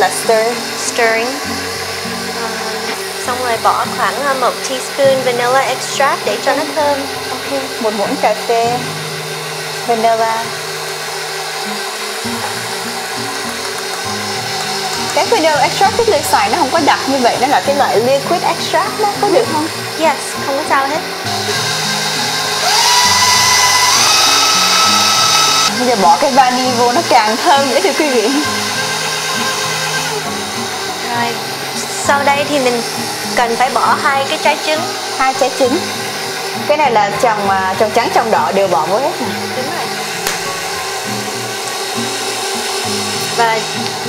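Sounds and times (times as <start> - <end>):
background music: 0.0 - 44.0
stand mixer motor whining: 0.0 - 44.0.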